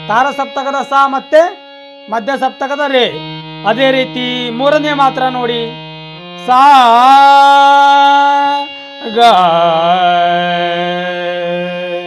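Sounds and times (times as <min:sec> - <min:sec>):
harmonium: 0:00.0 - 0:12.0.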